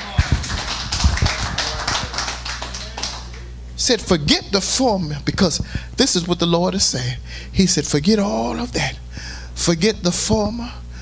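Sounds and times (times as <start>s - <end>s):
congregation clapping: 0.0s - 3.5s.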